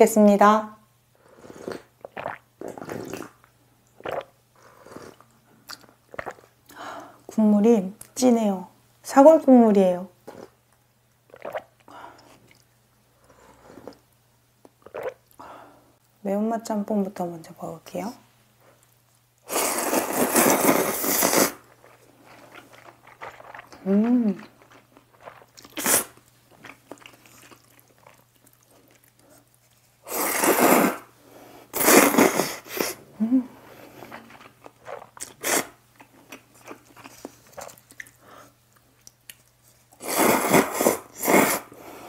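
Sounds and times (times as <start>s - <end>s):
slurping and swallowing broth: 1.4s - 3.4s, 4.0s - 5.3s, 6.1s - 6.5s, 14.8s - 15.2s
soft chewing and mouth clicks: 1.7s - 7.1s, 10.3s - 12.7s, 21.6s - 30.0s, 34.0s - 40.0s
noodles slurped loudly: 19.5s - 23.9s, 25.2s - 26.2s, 40.0s - 41.7s.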